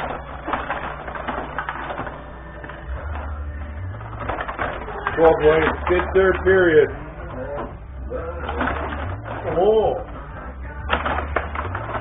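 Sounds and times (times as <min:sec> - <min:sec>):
table hockey clicking and rattling: 0:00.0 - 0:07.0, 0:08.4 - 0:12.0
low voices: 0:02.6 - 0:12.0.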